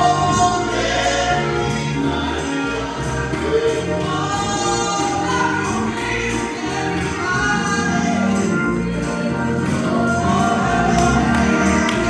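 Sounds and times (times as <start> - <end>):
live instrumental accompaniment: 0.0 - 12.0
women singing gospel song: 0.0 - 12.0.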